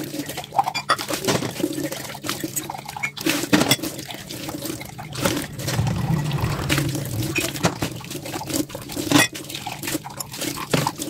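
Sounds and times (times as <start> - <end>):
water splashing and pouring: 1.4 - 11.0.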